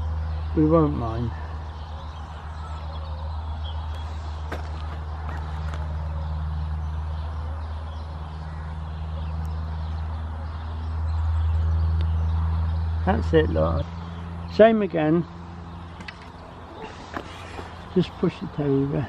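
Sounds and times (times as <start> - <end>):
low engine drone: 0.0 - 19.0.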